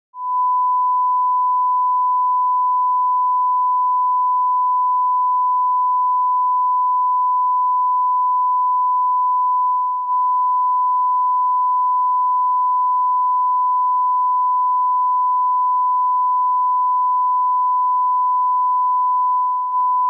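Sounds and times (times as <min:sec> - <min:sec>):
steady sine test tone: 0:00.2 - 0:20.0.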